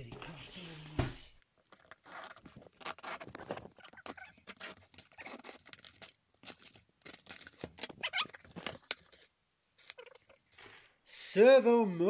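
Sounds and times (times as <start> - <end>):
cardboard and tape tearing: 1.7 - 10.6.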